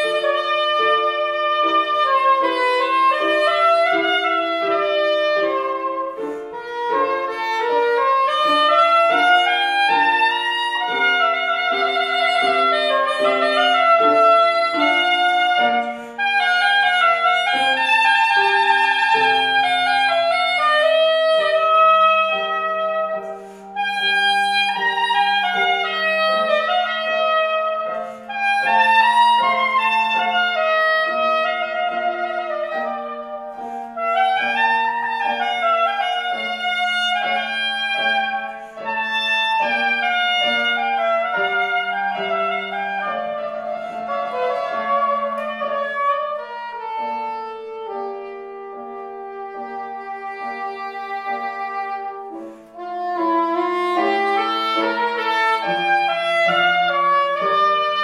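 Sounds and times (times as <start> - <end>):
piano accompaniment: 0.0 - 58.0
soprano saxophone melody: 0.0 - 58.0.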